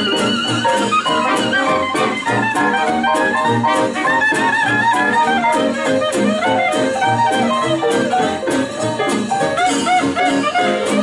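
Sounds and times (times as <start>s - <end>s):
clarinet: 0.0s - 11.0s
guitar: 0.0s - 11.0s
trombone: 0.0s - 11.0s
trumpet: 0.0s - 11.0s
washboard beat: 0.0s - 11.0s.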